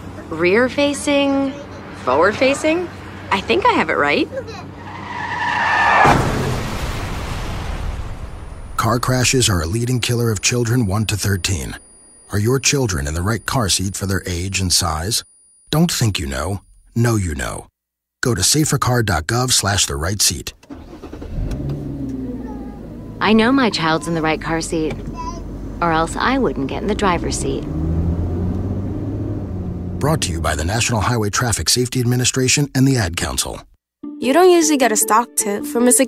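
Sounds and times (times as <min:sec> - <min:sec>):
car tyres screeching: 0:01.6 - 0:06.7, 0:20.7 - 0:31.5
car crash with low rumble: 0:05.6 - 0:10.2.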